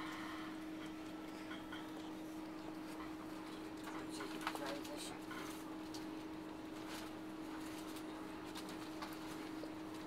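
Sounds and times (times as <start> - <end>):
low two-note train hum: 0.0 - 2.8.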